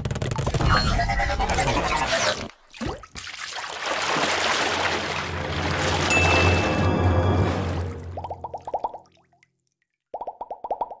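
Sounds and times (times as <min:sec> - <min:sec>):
popping sound effect: 0:10.2 - 0:11.0.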